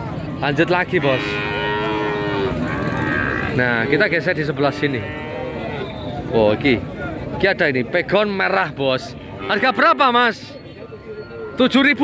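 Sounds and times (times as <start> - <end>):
cattle mooing: 0.9 - 6.0.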